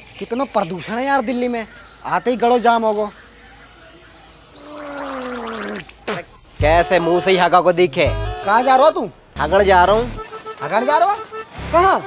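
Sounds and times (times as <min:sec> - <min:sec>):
man gargling water: 0:04.6 - 0:06.3
man spitting water: 0:04.7 - 0:06.4.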